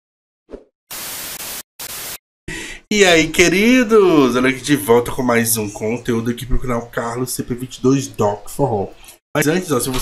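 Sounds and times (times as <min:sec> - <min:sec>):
tv static hiss: 0:00.9 - 0:02.2.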